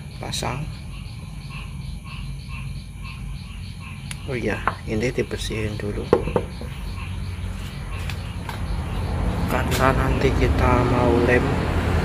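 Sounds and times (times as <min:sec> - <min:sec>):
steady low hum: 0:00.0 - 0:11.6
hammer knocking on wooden bench: 0:04.6 - 0:04.9, 0:06.0 - 0:06.8.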